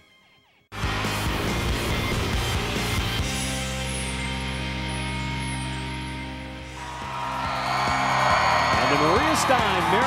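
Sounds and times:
sports broadcast theme music: 0:00.8 - 0:10.0
stadium crowd noise: 0:06.8 - 0:10.0.

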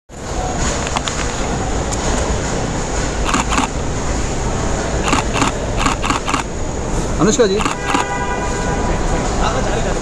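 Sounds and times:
ambient rumble and hiss: 0:00.1 - 0:10.0.

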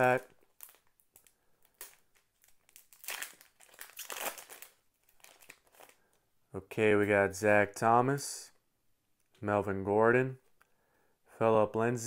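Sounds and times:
plastic wrapper crinkling: 0:00.0 - 0:06.2.

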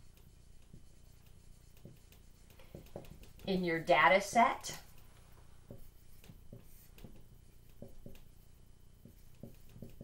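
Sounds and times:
marker writing on whiteboard: 0:00.0 - 0:10.0.

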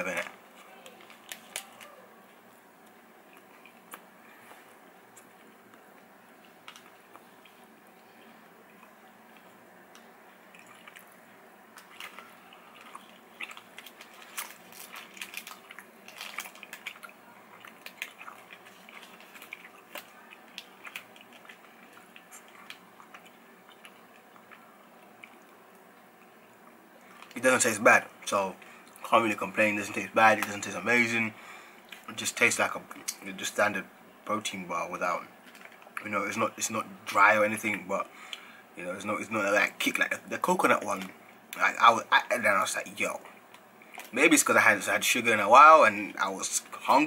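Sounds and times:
chewing and mouth clicks: 0:02.8 - 0:27.4.

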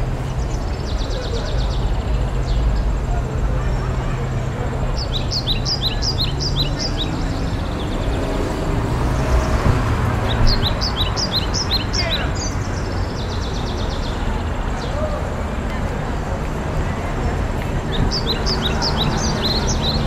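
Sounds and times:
songbird singing: 0:00.0 - 0:20.0.

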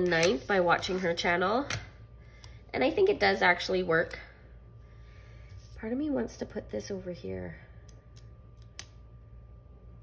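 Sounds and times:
paper sticker handling: 0:00.0 - 0:01.1
steady low hum: 0:00.0 - 0:10.0.

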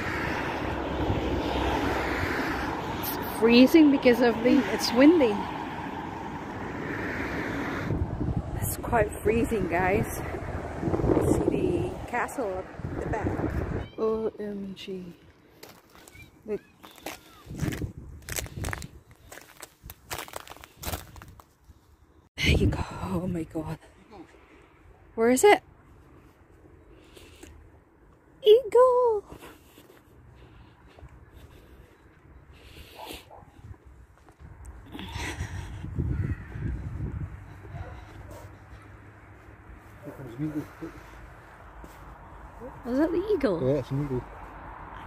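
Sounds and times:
wind buffeting microphone: 0:00.0 - 0:14.0, 0:17.4 - 0:20.2, 0:22.4 - 0:23.6, 0:32.4 - 0:38.8
footsteps breaking thin ice: 0:16.8 - 0:21.6
crow cawing: 0:36.1 - 0:36.9.

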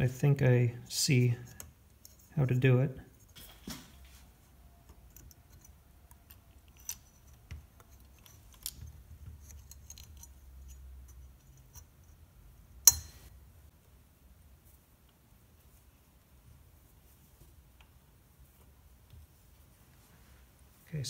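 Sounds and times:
small metal clicks: 0:04.8 - 0:11.9.

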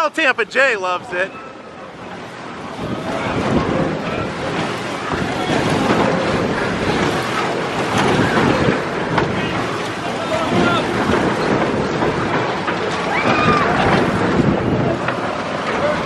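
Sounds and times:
fairground ride running: 0:00.0 - 0:16.0
mix of voices: 0:00.0 - 0:16.0
wind buffeting microphone: 0:01.0 - 0:16.0.

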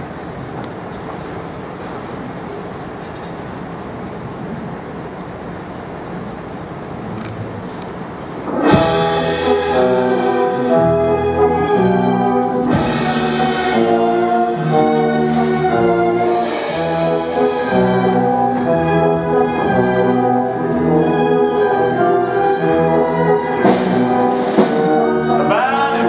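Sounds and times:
steady low noise: 0:03.6 - 0:26.0
orchestra with strings and brass: 0:06.8 - 0:26.0.

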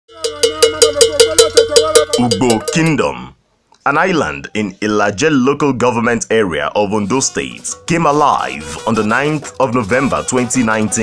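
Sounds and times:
hand bell struck rapidly: 0:00.1 - 0:03.0.

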